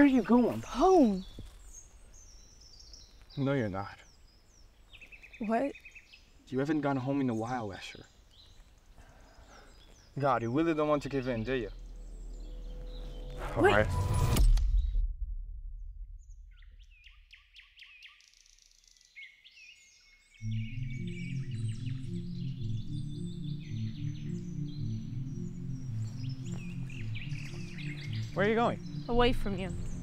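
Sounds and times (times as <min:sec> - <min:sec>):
birds chirping and singing: 0:00.0 - 0:14.9, 0:16.5 - 0:30.0
low sustained music: 0:10.3 - 0:14.6, 0:20.2 - 0:30.0.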